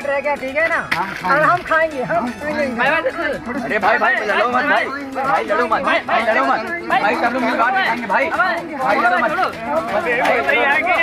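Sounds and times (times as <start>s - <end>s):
men chattering: 0.0s - 11.0s.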